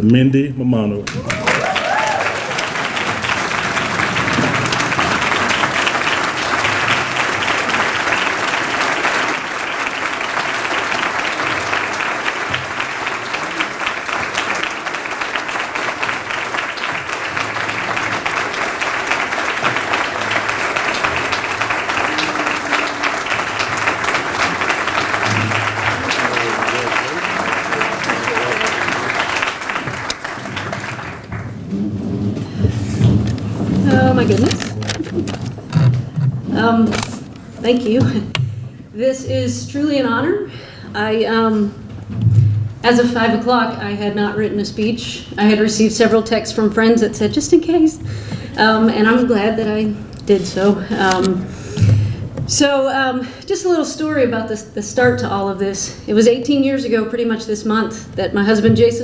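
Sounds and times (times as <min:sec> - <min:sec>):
large audience applauding: 0:01.1 - 0:36.0.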